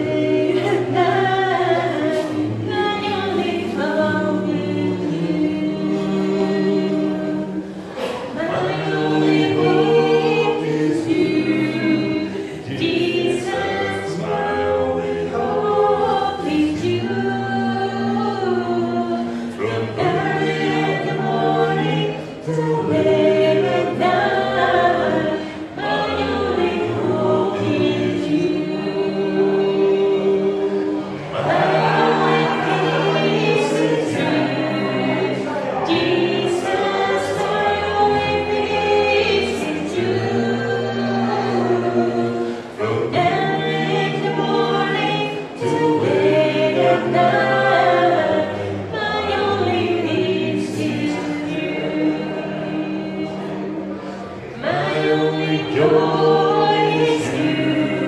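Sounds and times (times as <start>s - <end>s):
group singing a hymn a cappella: 0.0s - 58.0s.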